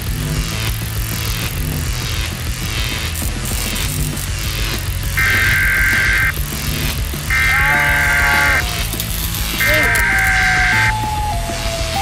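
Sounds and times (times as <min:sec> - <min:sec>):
background music: 0:00.0 - 0:12.0
long electronic beeps: 0:05.2 - 0:06.3, 0:07.3 - 0:08.7, 0:09.6 - 0:12.0
low wavering tone: 0:10.8 - 0:12.0.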